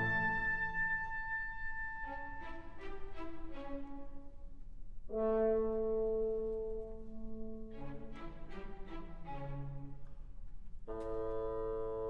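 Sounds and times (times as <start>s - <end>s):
orchestra playing: 0.0s - 4.4s, 5.1s - 10.1s.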